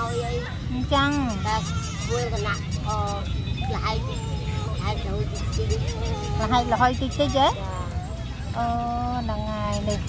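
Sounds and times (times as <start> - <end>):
woman talking: 0.0 - 4.0, 4.8 - 7.7, 8.6 - 10.0.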